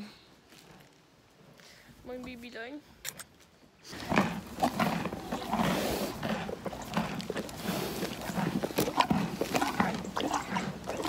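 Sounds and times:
horse breathing and snuffling: 0:03.8 - 0:11.0.

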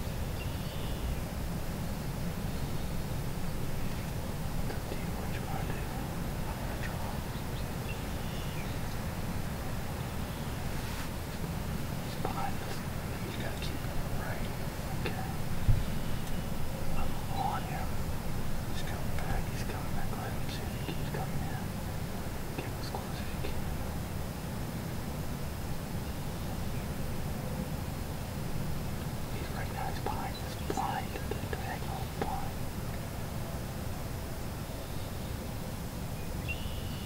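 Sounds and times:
low steady rumble: 0:00.0 - 0:37.0
faint hushed whispering: 0:03.9 - 0:07.8, 0:12.0 - 0:15.8, 0:16.7 - 0:24.1, 0:29.3 - 0:32.6.

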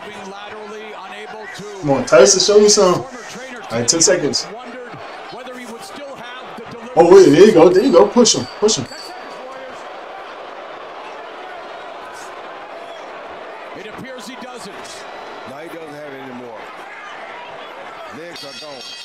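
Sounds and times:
faint tv commentary: 0:00.0 - 0:12.4, 0:13.5 - 0:19.0
crowd hubbub: 0:00.0 - 0:19.0
bell ringing: 0:01.8 - 0:03.1, 0:03.7 - 0:04.5, 0:07.0 - 0:09.9, 0:18.1 - 0:19.0.

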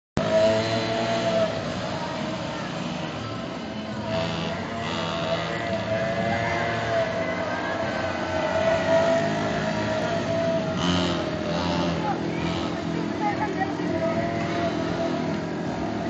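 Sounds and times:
small atv engines running: 0:00.2 - 0:16.0.

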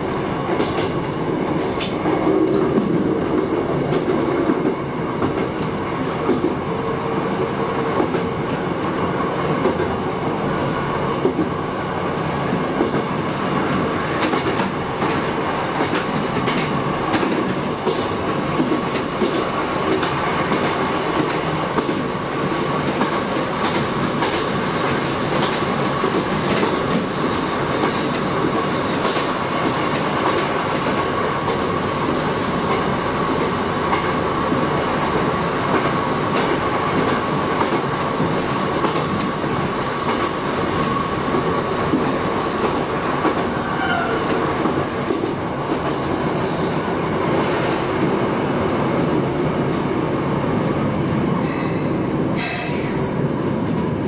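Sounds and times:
train running noise: 0:00.0 - 0:54.0
train brake squeal: 0:51.4 - 0:53.0.

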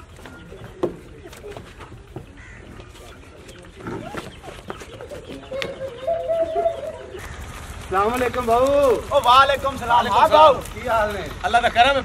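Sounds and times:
bird calling: 0:00.0 - 0:08.0.

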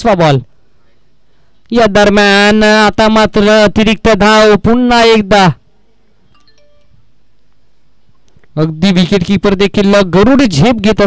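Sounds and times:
faint chiming tones: 0:06.3 - 0:07.2.

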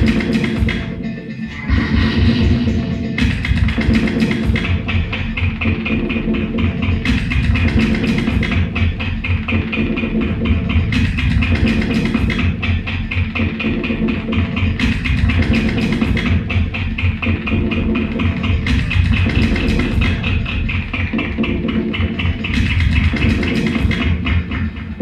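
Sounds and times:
experimental looped music: 0:00.0 - 0:25.0.

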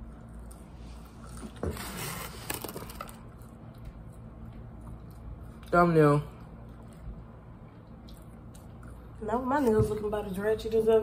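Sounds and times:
wet squishy eating sounds: 0:03.2 - 0:09.7.

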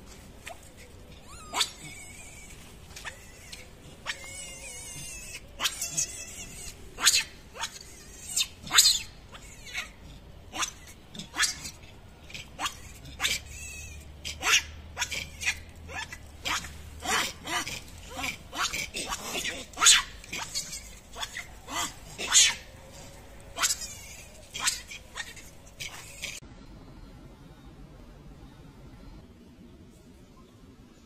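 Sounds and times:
baby monkey distress cries: 0:00.4 - 0:26.4.

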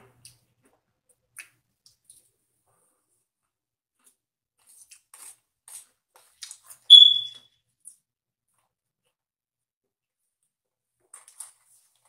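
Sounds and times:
high-pitched electronic beep: 0:06.9 - 0:07.4.

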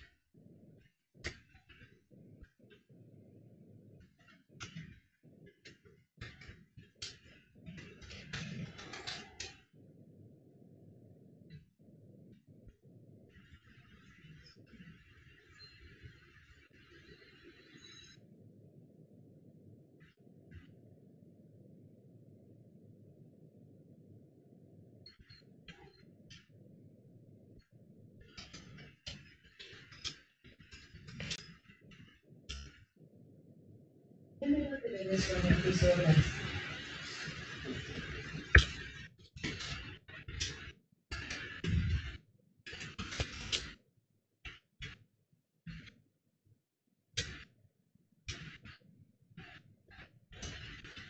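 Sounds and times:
faint steady hum: 0:00.0 - 0:43.8
low steady hum: 0:17.8 - 0:29.3, 0:30.8 - 0:38.8.

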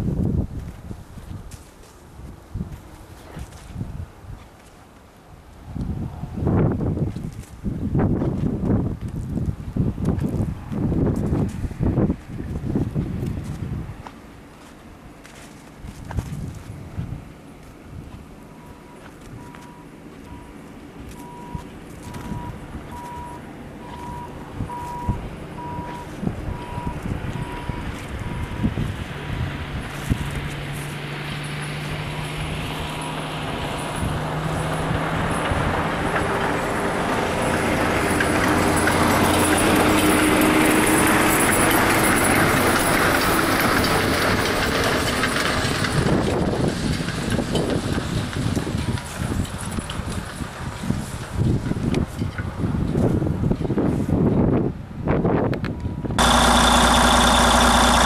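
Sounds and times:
footsteps crunching in snow: 0:00.2 - 0:05.6, 0:06.9 - 0:33.2
diesel truck engine running: 0:17.0 - 0:51.8, 0:56.1 - 0:58.0
faint steady beeping: 0:18.5 - 0:28.6.

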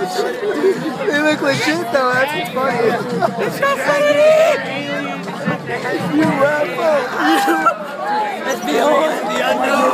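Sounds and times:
people chattering: 0:00.0 - 0:09.9.

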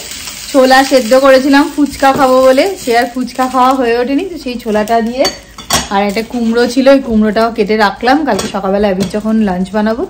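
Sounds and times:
woman talking: 0:00.5 - 0:10.0
kitchenware clattering on countertop: 0:05.2 - 0:06.2.

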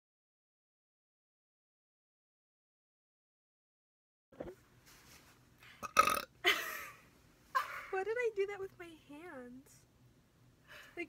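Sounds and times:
young women laughing loudly: 0:06.4 - 0:07.0.

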